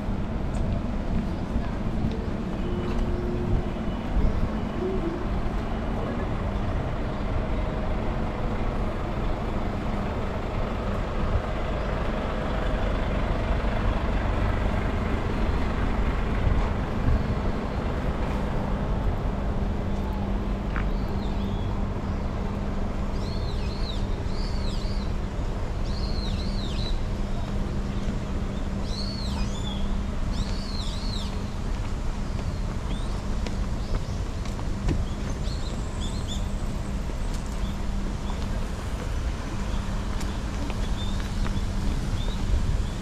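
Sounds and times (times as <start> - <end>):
road traffic rumble: 0.0 - 43.0.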